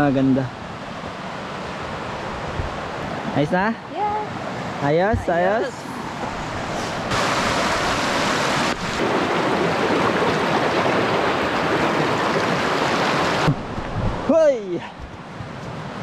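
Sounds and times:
river rushing over rocks: 0:00.1 - 0:16.0.

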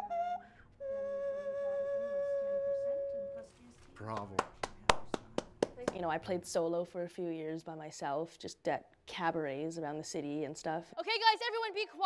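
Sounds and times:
nose flute notes: 0:00.0 - 0:03.5.

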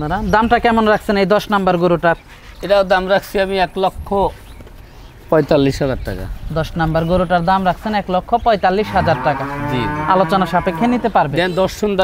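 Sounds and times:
cow mooing: 0:08.8 - 0:11.2.

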